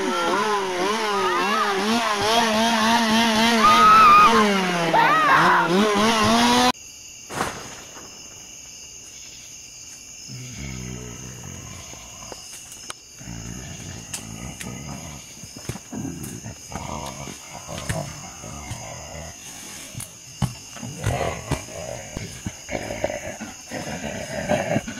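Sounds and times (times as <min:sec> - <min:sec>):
low growls and roars: 0:00.0 - 0:06.7, 0:10.3 - 0:12.5, 0:13.2 - 0:20.1, 0:20.8 - 0:24.9
insects trilling: 0:00.0 - 0:24.9.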